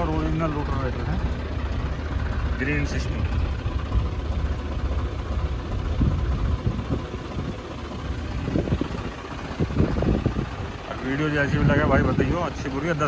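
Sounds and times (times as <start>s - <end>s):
tractor diesel engine under load: 0.0s - 13.0s.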